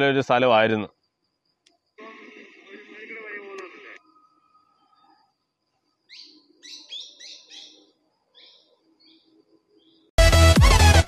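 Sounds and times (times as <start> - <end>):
bird chirping: 3.0 - 10.2.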